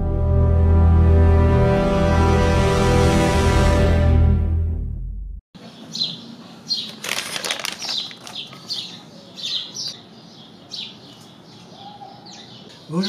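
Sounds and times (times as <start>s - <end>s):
small birds chirping: 5.6s - 13.0s.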